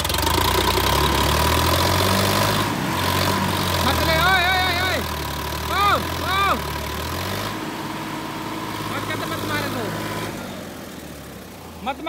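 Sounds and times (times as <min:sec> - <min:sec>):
tractor diesel engine under load: 0:00.0 - 0:12.0
faint distant shouts: 0:05.7 - 0:06.8.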